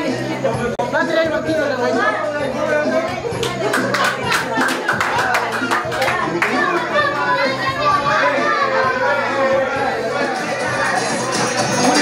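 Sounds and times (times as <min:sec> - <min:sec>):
children shouting and chattering: 0:00.0 - 0:12.0
music playing: 0:00.0 - 0:12.0.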